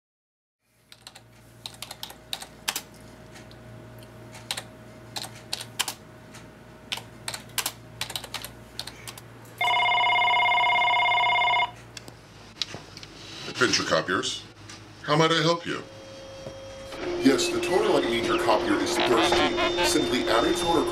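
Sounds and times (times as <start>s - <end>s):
low steady hum: 0.6s - 20.9s
computer keyboard typing: 0.9s - 2.9s, 4.4s - 6.0s, 6.9s - 9.2s
desk telephone ringing: 9.6s - 11.8s.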